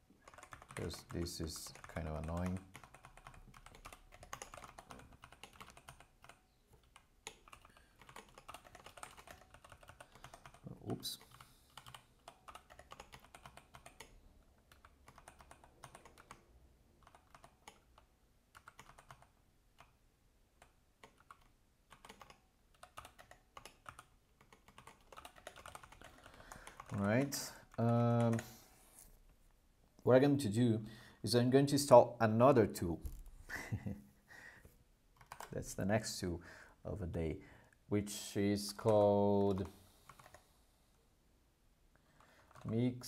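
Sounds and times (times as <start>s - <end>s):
keyboard typing: 0.1s - 20.0s, 20.6s - 28.6s, 35.1s - 35.6s, 38.7s - 40.4s, 42.2s - 42.8s.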